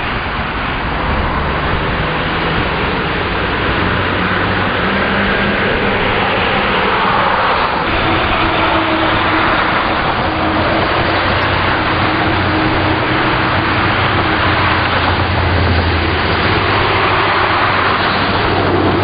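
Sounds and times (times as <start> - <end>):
low engine hum: 0.0 - 19.0
road traffic rush: 0.0 - 19.0.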